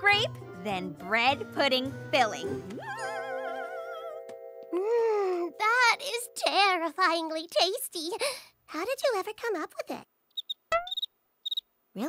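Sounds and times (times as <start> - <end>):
cartoon cricket chirps: 10.4 - 11.6.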